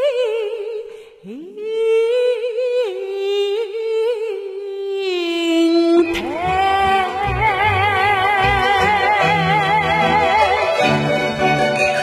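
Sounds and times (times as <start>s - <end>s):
woman singing opera with vibrato: 0.0s - 12.0s.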